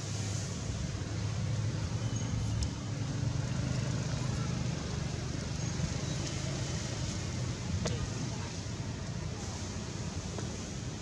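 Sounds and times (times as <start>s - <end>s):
faint high chirp: 1.9s - 2.8s
background hiss: 5.8s - 11.0s.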